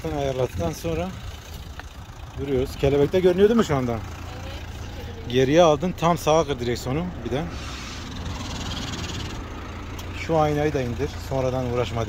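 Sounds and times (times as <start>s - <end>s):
car engine running low revs: 0.0s - 12.0s.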